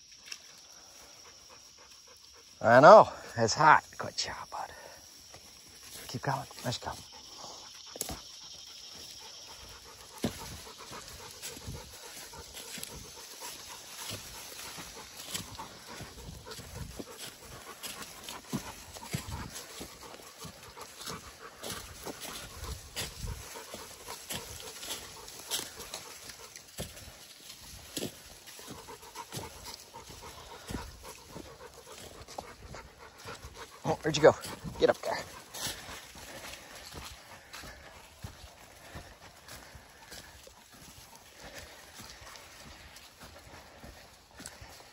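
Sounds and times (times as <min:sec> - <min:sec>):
dog panting: 0:00.6 - 0:03.3, 0:03.9 - 0:44.9
footsteps crunching on dry leaves: 0:04.5 - 0:44.9.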